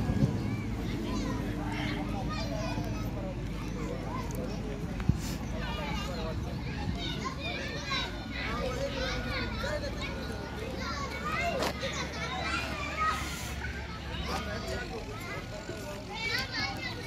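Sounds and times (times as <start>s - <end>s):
children calling and chattering: 0.0s - 17.0s.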